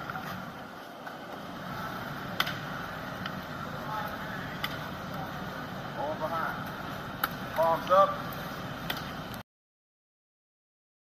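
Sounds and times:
steady background hiss: 0.0 - 9.4
distant voice: 1.5 - 8.3.

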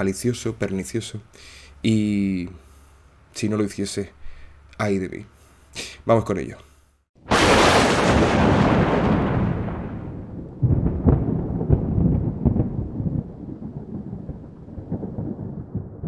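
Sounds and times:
thunderclap with rolling rumble: 7.3 - 16.0.

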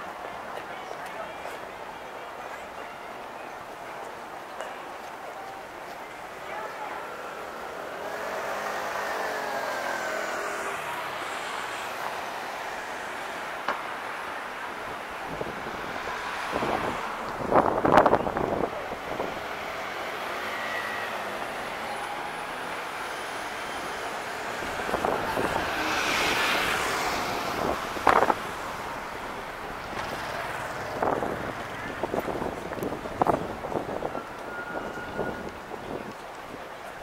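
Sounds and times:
cars passing: 0.0 - 37.0
voices of passers-by: 0.0 - 37.0.

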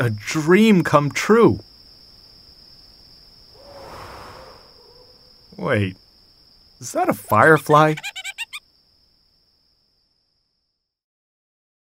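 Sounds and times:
cartoon character squeaky giggle: 7.4 - 8.6.

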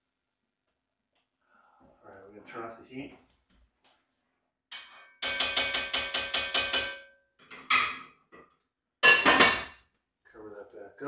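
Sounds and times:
metal cookware taps: 4.7 - 9.8.

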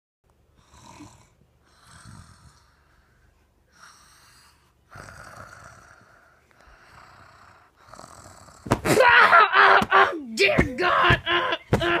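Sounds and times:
person snoring: 0.6 - 3.1, 3.7 - 8.7.

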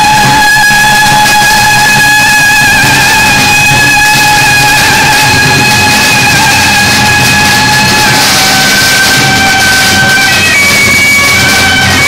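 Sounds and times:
firecrackers crackling: 0.0 - 12.0
reedy wind instrument note: 0.0 - 12.0.

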